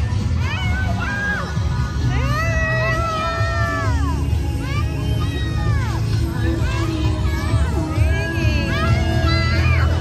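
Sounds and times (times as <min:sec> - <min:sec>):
parade music from loudspeakers: 0:00.0 - 0:10.0.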